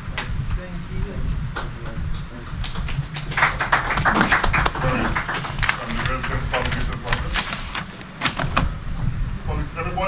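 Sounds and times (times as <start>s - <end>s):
audience applause: 2.8s - 6.4s.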